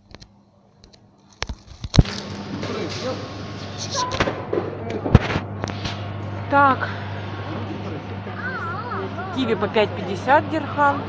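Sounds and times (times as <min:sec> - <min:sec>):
steady low hum: 0:00.3 - 0:11.0.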